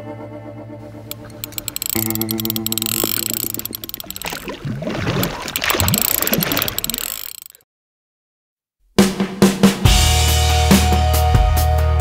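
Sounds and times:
rapid mechanical clicking: 1.1 - 4.6, 5.2 - 7.6
rushing splashing water: 2.9 - 7.5.

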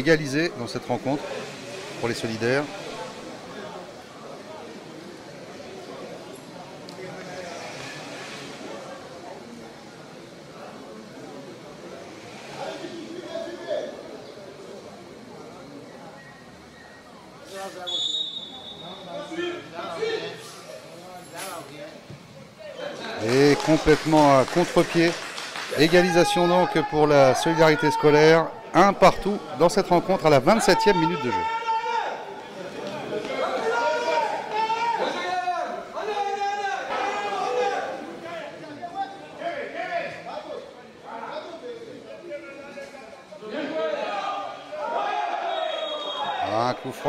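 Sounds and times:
referee's whistle: 17.8 - 19.1, 45.5 - 46.6.

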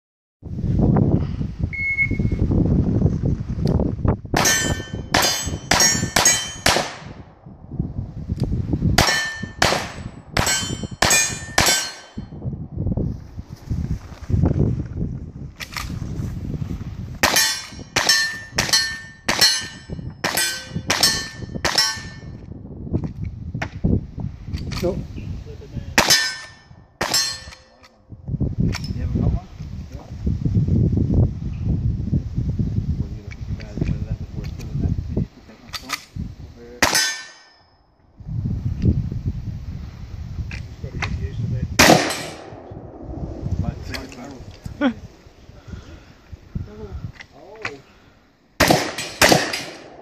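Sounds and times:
clang of hit steel target: 4.4 - 7.0, 9.0 - 12.3, 17.2 - 22.4, 26.0 - 27.9, 36.8 - 37.6, 41.8 - 42.7, 48.7 - 50.0
quick gunshots: 9.0 - 12.1, 41.8 - 42.7, 48.6 - 50.0.

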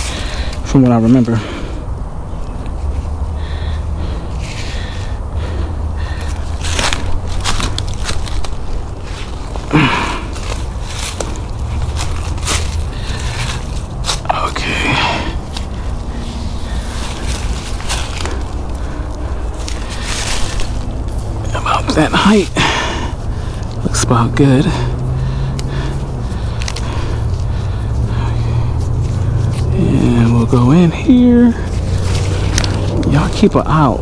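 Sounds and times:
low steady rumble: 0.0 - 34.0
footsteps crunching dry leaves: 2.2 - 34.0
strap rustling and scraping: 2.3 - 34.0.

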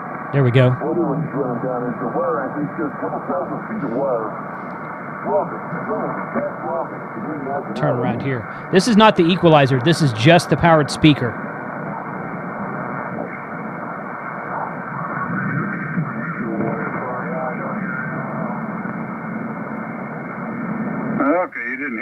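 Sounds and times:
radio static hiss: 0.0 - 22.0
garbled radio voices: 0.4 - 11.8, 12.9 - 18.8, 21.1 - 22.0
clear radio voice: 5.3 - 11.4, 21.2 - 22.0.

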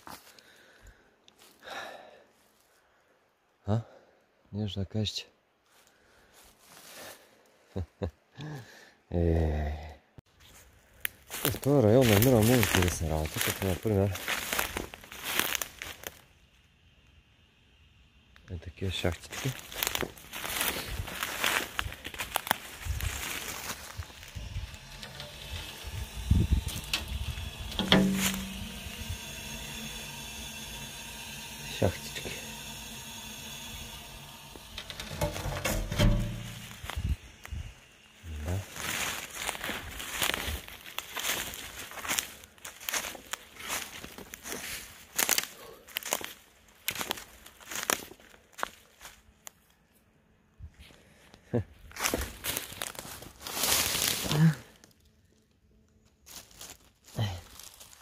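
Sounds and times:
footsteps crunching through dry leaves: 5.7 - 7.3, 10.3 - 16.4, 19.3 - 33.3, 33.9 - 49.7, 51.8 - 55.1, 56.0 - 58.0
scattered knocks and thuds: 34.8 - 37.0.

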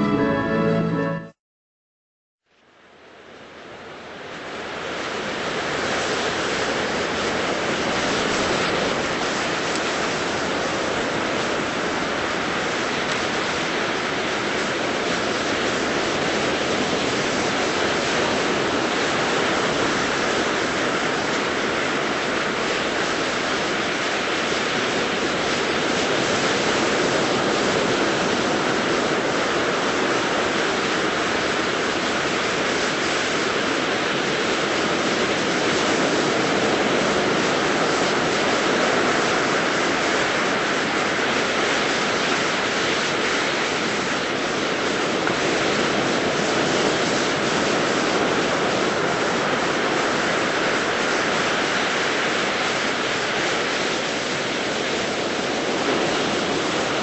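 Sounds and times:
ocean waves washing onto beach: 2.8 - 57.0.

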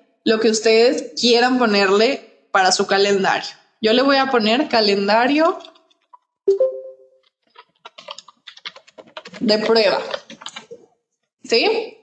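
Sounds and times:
computer keyboard typing: 5.4 - 6.1, 7.2 - 10.8.

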